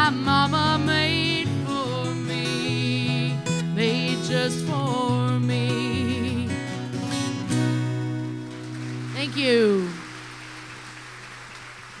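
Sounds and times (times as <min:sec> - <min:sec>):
audience applause: 0:08.2 - 0:12.0.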